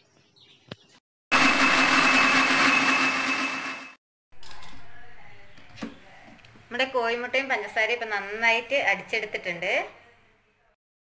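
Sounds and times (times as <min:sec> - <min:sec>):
mixer grinder motor whirring: 0:01.3 - 0:04.0.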